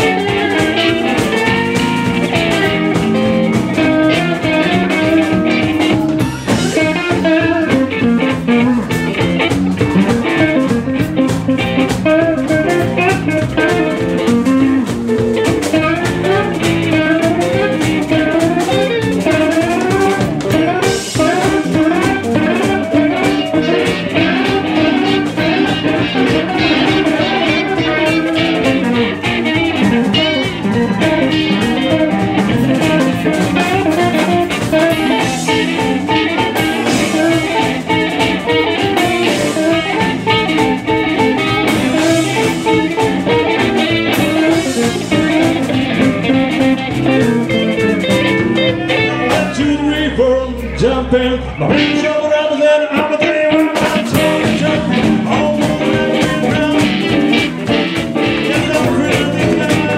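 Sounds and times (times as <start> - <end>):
harmonica wailing: 0.0 - 52.6
blues band playing: 0.0 - 59.9.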